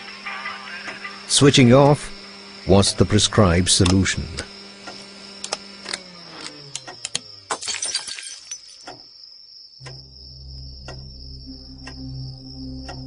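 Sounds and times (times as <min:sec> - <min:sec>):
electrical hum sinking in pitch: 0:00.0 - 0:07.5, 0:09.8 - 0:13.0
low steady hum: 0:09.8 - 0:13.0.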